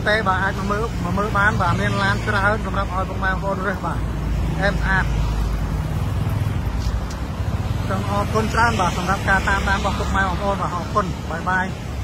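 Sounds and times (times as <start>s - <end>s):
person speaking: 0.0s - 5.7s, 6.7s - 12.0s
traffic rumble: 0.0s - 12.0s.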